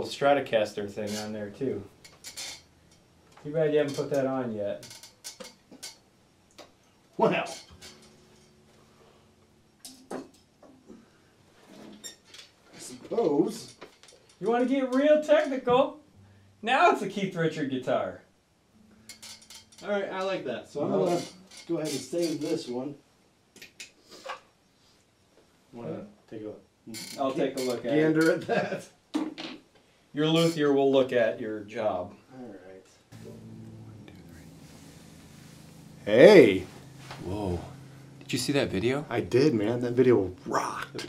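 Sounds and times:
guitar handling clicks and scrapes: 4.8s - 6.0s, 7.5s - 9.0s, 19.0s - 19.9s.

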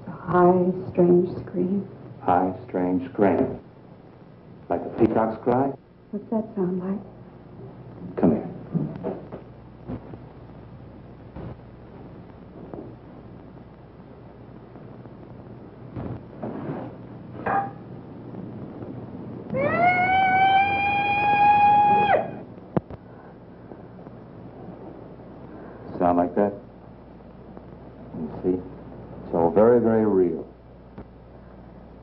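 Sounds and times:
faint steady hiss: 0.0s - 32.0s
peacock call: 19.6s - 22.4s.

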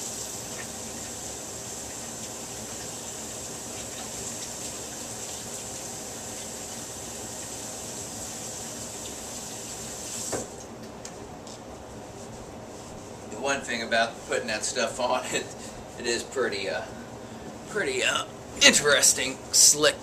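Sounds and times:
sink tap running: 0.0s - 10.4s.

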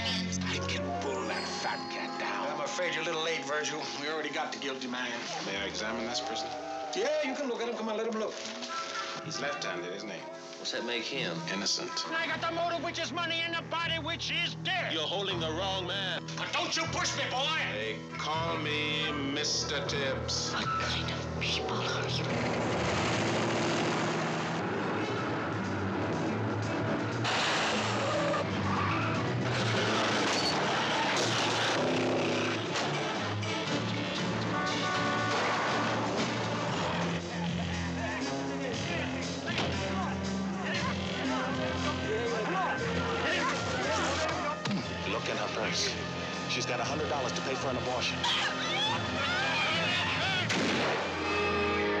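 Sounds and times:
car tyres squealing: 27.2s - 33.7s.

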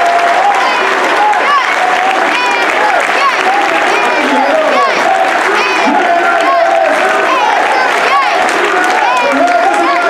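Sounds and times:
clapping: 0.0s - 10.0s
crowd cheering and shouting: 0.0s - 10.0s.

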